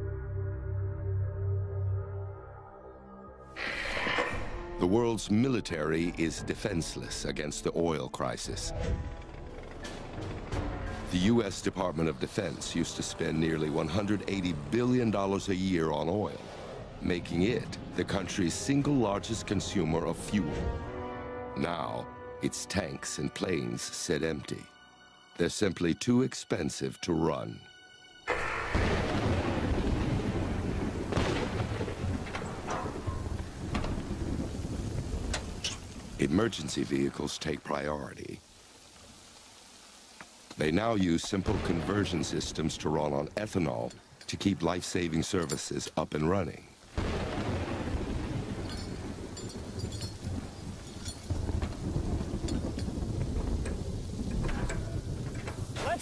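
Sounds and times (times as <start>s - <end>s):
rain-like hiss: 3.5s - 56.0s.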